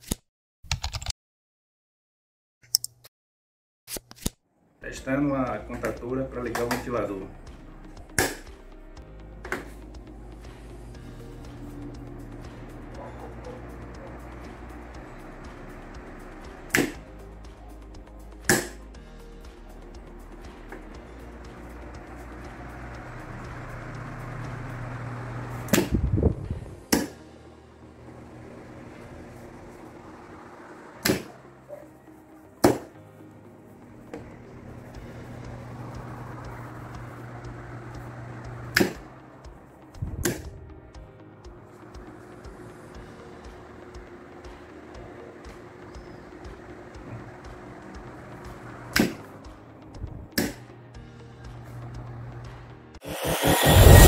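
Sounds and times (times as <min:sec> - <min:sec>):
low hum: 0:07.3 - 0:18.3, 0:19.8 - 0:31.7, 0:33.4 - 0:50.4, 0:51.8 - 0:54.0
desk fan whirring: 0:09.0 - 0:18.4, 0:19.9 - 0:31.7, 0:33.4 - 0:40.9, 0:41.6 - 0:50.4.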